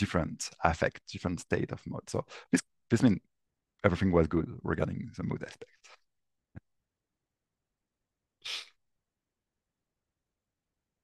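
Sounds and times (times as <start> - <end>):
person breathing out: 8.4 - 8.7.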